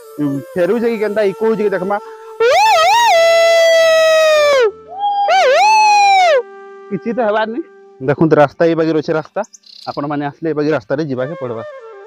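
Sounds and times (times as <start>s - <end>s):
man's high-pitched vocal call: 0.2s - 6.5s.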